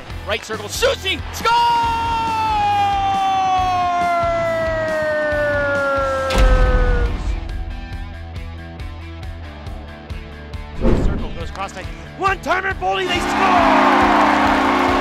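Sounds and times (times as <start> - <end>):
deep booming hit: 6.3 - 8.8, 10.8 - 11.4.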